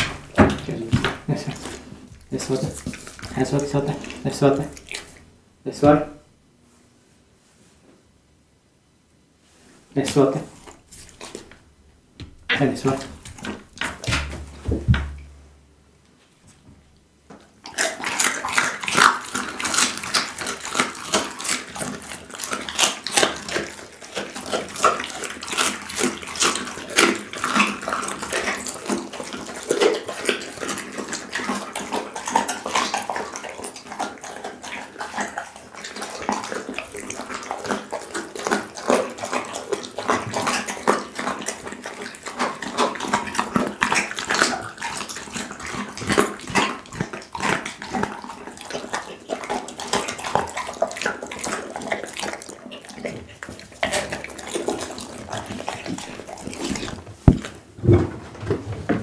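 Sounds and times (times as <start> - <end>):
dog chewing meat on bone: 0.0 - 6.2, 10.1 - 15.3, 17.4 - 58.0.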